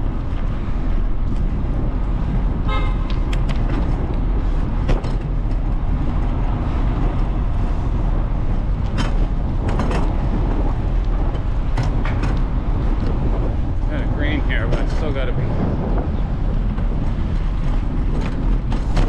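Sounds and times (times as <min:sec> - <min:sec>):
bicycle road noise: 0:00.0 - 0:19.0
wind rush: 0:00.0 - 0:19.0
horn toot: 0:02.6 - 0:03.1.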